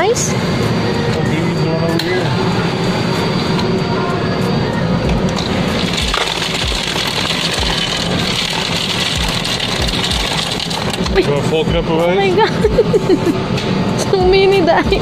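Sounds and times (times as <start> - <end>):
ice cubes dropping into cup: 5.4 - 11.2.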